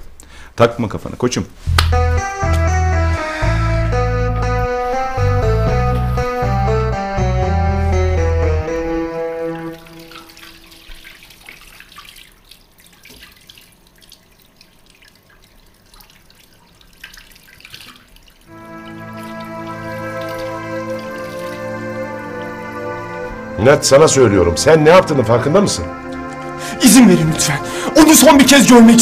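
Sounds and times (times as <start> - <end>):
music with heavy bass line: 1.7 - 9.5
hands splashing in water: 9.8 - 21.7.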